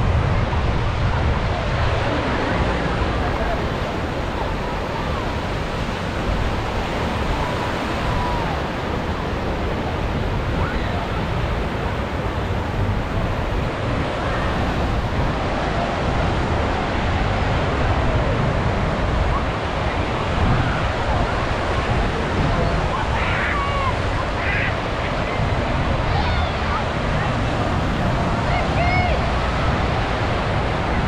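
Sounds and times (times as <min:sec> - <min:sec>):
faint distant voices: 0:00.0 - 0:31.0
wind rumbling on microphone: 0:00.0 - 0:31.0
small waves breaking: 0:00.4 - 0:31.0.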